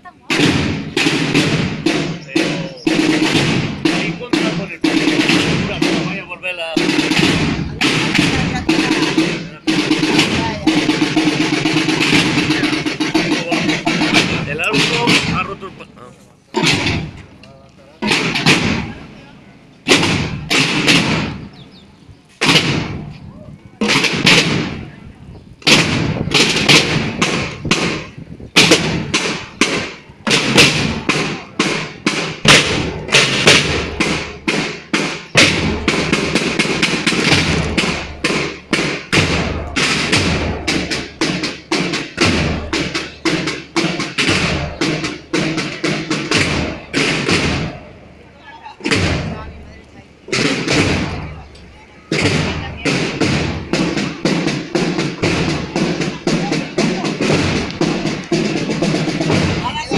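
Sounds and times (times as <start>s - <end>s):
side drums and bass drum beating: 0.0s - 59.9s.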